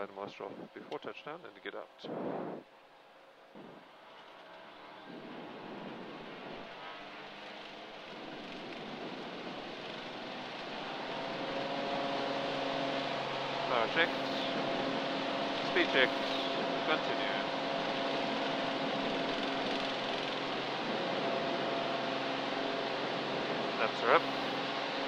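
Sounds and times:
light aircraft engine and propeller: 3.6s - 25.0s.

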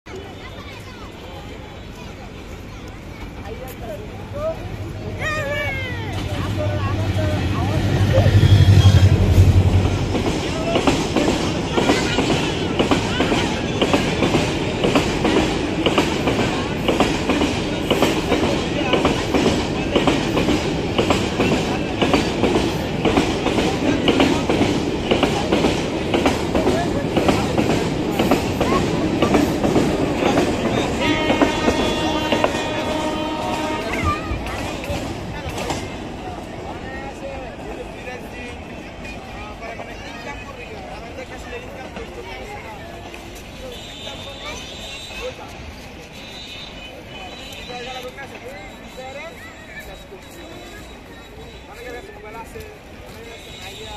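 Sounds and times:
diesel locomotive engine hum: 0.1s - 53.9s
train wheels clickety-clack: 6.1s - 53.9s.

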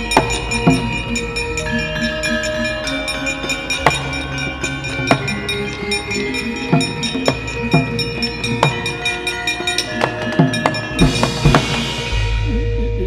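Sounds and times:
sharp percussive strikes: 0.0s - 12.6s
gamelan ensemble: 0.0s - 13.0s.

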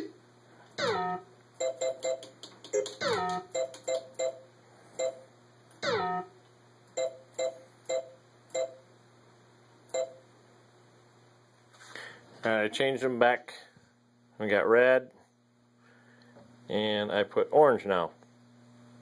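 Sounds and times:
faint steady hum: 0.0s - 19.0s
falling electronic chirps: 0.8s - 2.1s, 5.8s - 6.3s
short two-note electronic beeps: 0.8s - 2.2s, 5.8s - 6.4s.

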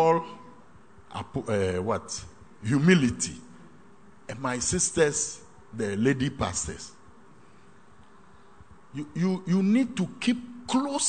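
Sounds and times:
room tone hum with hiss: 0.0s - 11.0s.

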